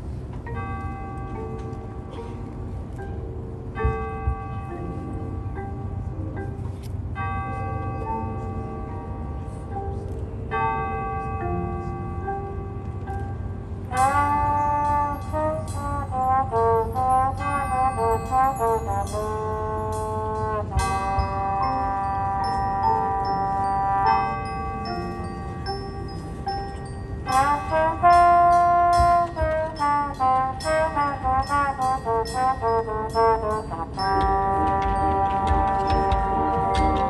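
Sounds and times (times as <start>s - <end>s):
mallet percussion: 0.4s - 37.0s
brass holding chords: 7.1s - 37.0s.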